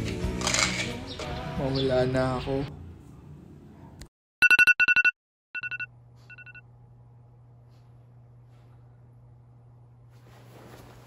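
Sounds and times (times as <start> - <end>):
electronic ringer beeping: 4.4 - 6.6.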